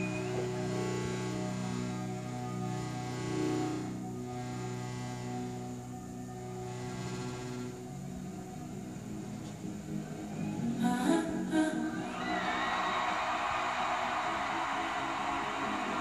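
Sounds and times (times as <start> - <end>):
slow music with held chords: 0.0 - 16.0.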